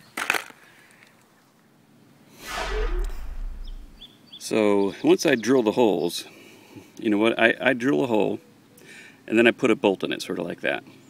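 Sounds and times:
low rumble: 0:02.4 - 0:04.0
whoosh falling in pitch: 0:02.4 - 0:04.0.

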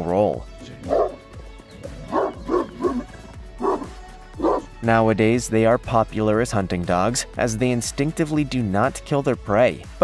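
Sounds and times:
background music: 0:00.0 - 0:10.0
large dog barking: 0:00.8 - 0:01.2, 0:01.9 - 0:04.7.

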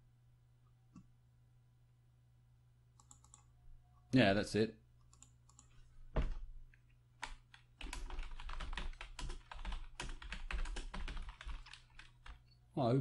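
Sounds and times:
computer keyboard typing: 0:03.0 - 0:03.5, 0:05.1 - 0:05.8, 0:07.2 - 0:12.5.

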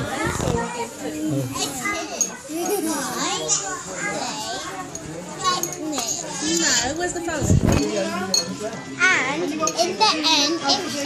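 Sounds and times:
young children chattering and squealing: 0:00.0 - 0:11.0.

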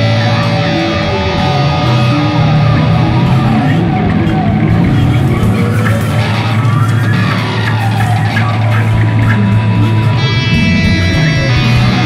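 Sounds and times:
low bass note: 0:00.0 - 0:06.6
distorted electric guitar: 0:00.0 - 0:12.0.

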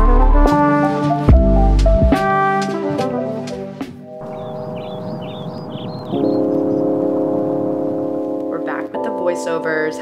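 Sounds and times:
music of ringing held chords: 0:04.1 - 0:09.6.

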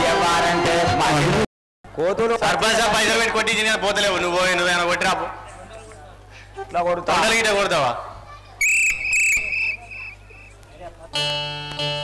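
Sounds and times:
high shrill chirps: 0:08.6 - 0:10.6.

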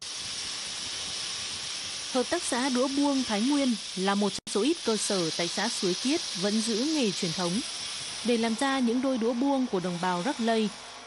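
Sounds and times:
machines running with high hiss: 0:00.0 - 0:11.0.

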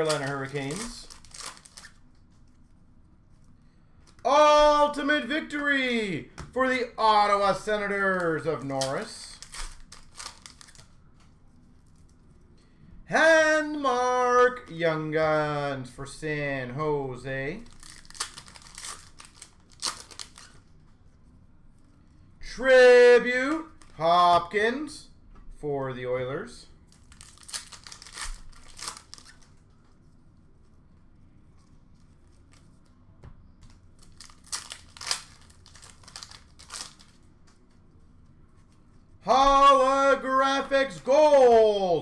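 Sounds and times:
wrapper crinkling and tearing: 0:00.0 - 0:02.1, 0:07.6 - 0:11.0, 0:17.6 - 0:20.7, 0:26.9 - 0:29.6, 0:34.0 - 0:37.3
cards rustling: 0:00.0 - 0:02.7, 0:03.3 - 0:12.5, 0:17.6 - 0:22.3, 0:23.2 - 0:24.0, 0:26.9 - 0:41.8.

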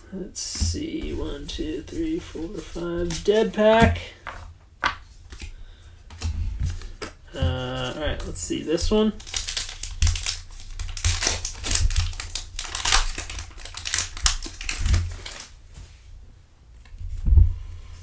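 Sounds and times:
wrapper tearing and crinkling: 0:08.8 - 0:15.6.

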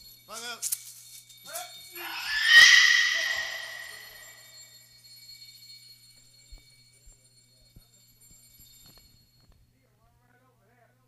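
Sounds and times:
metallic cymbal crash: 0:02.0 - 0:04.4.

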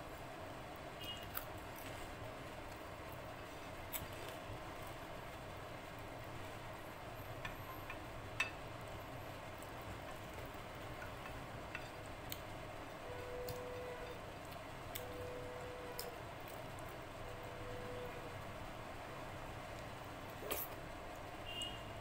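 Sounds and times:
faint steady tone: 0:12.7 - 0:16.2, 0:17.1 - 0:20.7.

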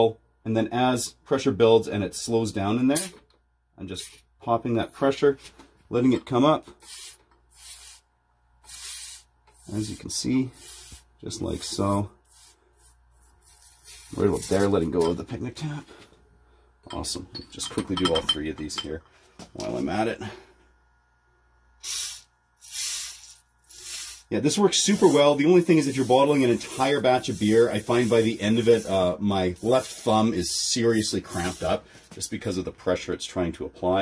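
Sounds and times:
gas hissing from bottle: 0:06.8 - 0:14.6, 0:21.8 - 0:32.1.

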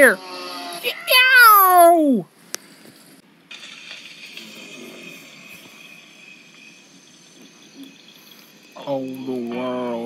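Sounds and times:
faint high-pitched background noise: 0:03.1 - 0:10.0.

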